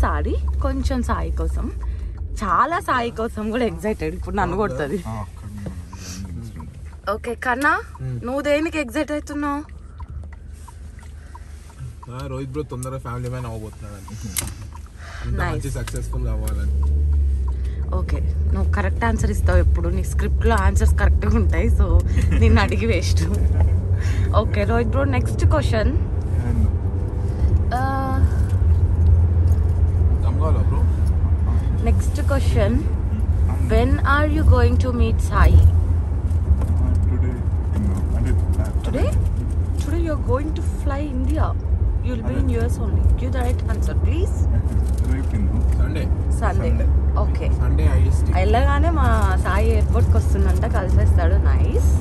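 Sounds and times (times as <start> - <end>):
steady low rumble: 0.0 - 52.0.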